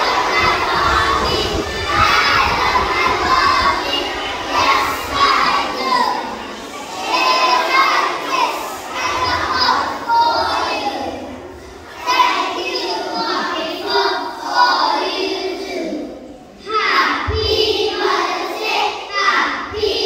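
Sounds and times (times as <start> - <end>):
children singing in unison: 0.0 - 20.0.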